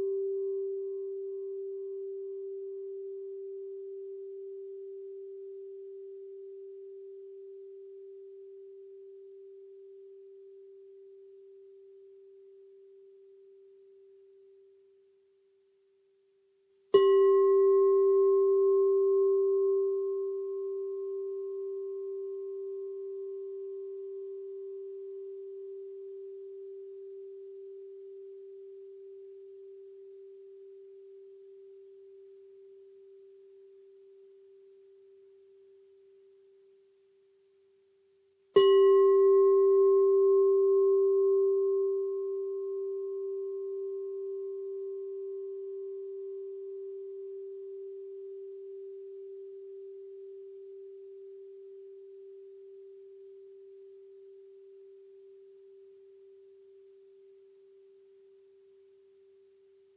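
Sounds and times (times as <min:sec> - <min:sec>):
singing bowl ringing: 0:00.0 - 0:14.5, 0:16.9 - 0:36.5, 0:38.5 - 0:59.4
singing bowl struck: 0:16.9 - 0:32.8, 0:38.6 - 0:55.0.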